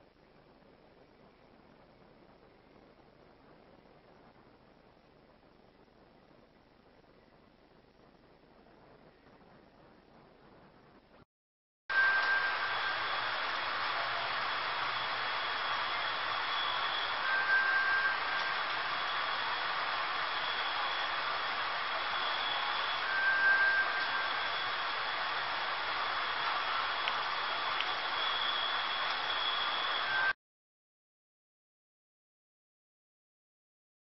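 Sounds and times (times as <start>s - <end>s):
short low whistle: 11.9s - 30.4s
steady hiss: 11.9s - 30.4s
thin high whistling tone: 11.9s - 30.4s.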